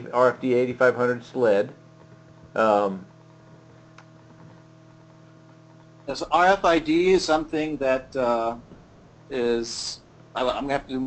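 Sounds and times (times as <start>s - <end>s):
faint electrical hum: 0.0s - 11.0s
steady tones: 0.0s - 11.0s.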